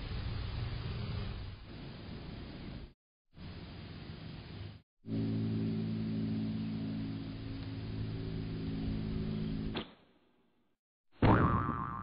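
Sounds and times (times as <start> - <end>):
cartoon boing sound effect: 11.2 - 12.0.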